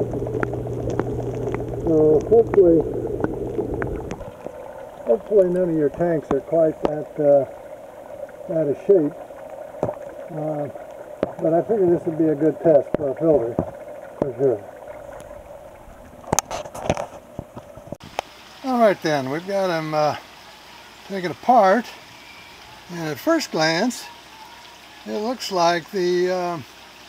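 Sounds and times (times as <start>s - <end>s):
low hum: 0.0s - 18.0s
water gurgling and trickling: 0.0s - 27.0s.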